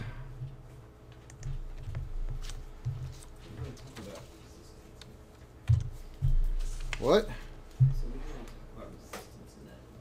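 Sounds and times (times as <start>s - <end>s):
keyboard and mouse clicks: 1.1s - 2.6s.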